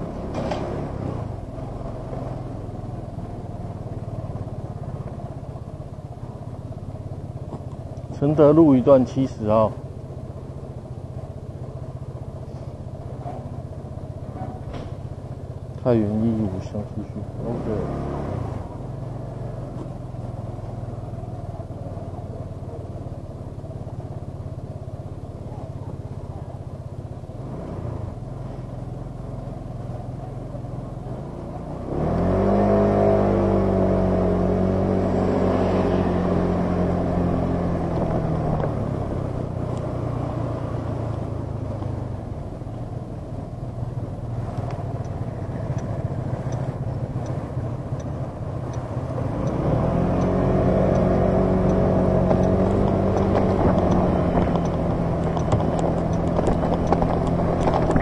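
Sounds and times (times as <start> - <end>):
motor scooter engine: 0.0 - 58.0.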